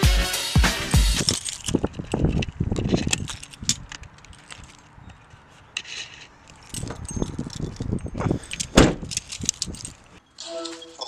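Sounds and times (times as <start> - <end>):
metallic jingling and clicking: 1.1 - 11.0
loud thump: 8.8 - 9.0.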